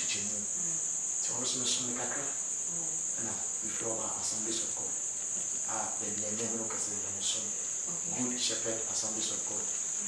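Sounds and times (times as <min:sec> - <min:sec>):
faint man speaking: 0:00.0 - 0:02.4, 0:05.6 - 0:09.7.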